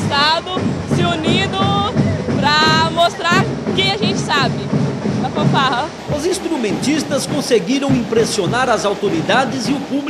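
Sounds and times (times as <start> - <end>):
young woman speaking: 0.0 - 5.9
marching band playing: 0.0 - 10.0.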